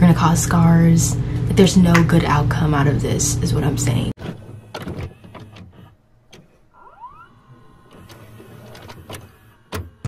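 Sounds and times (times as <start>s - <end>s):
small motor whirring: 4.4s - 10.0s.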